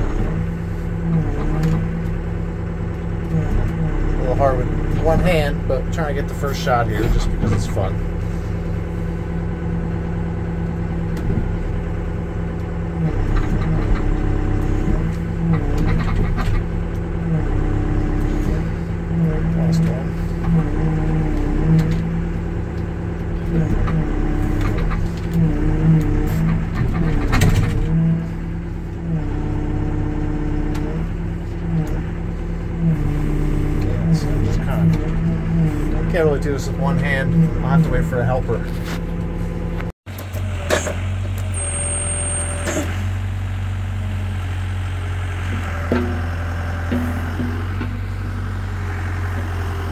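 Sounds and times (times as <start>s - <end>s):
diesel engine under load: 0.0s - 49.9s.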